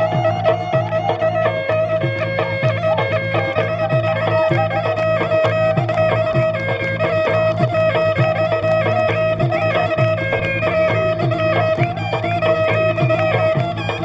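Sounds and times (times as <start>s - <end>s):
folk music with drum: 0.0s - 14.0s
held drone note: 0.0s - 14.0s.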